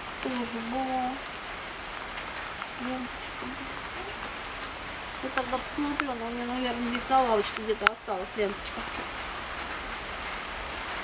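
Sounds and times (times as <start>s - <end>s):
light rain on foliage: 0.0s - 11.0s
raindrop ticks: 0.0s - 11.0s.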